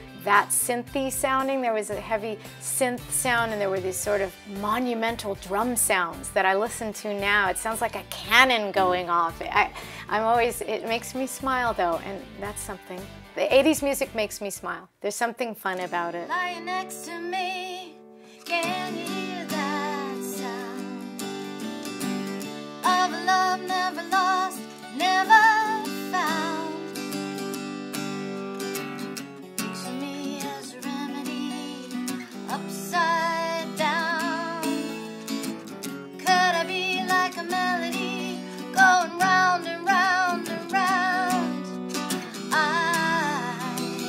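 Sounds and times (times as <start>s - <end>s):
woman singing pop song: 0.0s - 14.3s, 15.7s - 21.2s, 22.8s - 27.1s, 29.6s - 35.1s, 36.2s - 44.0s
acoustic guitars: 0.0s - 44.0s.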